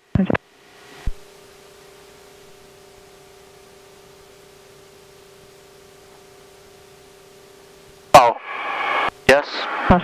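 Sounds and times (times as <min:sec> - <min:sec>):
faint hum: 0:00.0 - 0:10.0
intercom hiss: 0:08.1 - 0:10.0.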